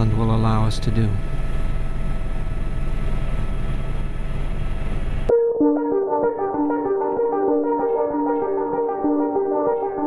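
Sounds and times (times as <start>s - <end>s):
aircraft engine and air drone: 0.0s - 5.4s
steady tones: 5.3s - 10.0s.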